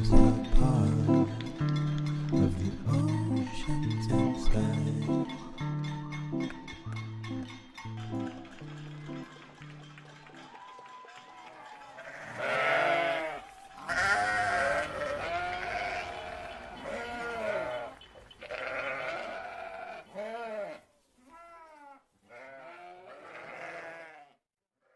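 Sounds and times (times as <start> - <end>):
sheep bleating: 12.0 - 24.4.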